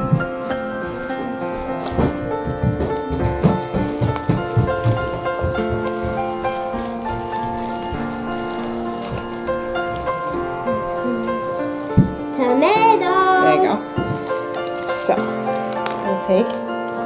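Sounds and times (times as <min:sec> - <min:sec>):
music of steady held notes: 0:00.0 - 0:17.0.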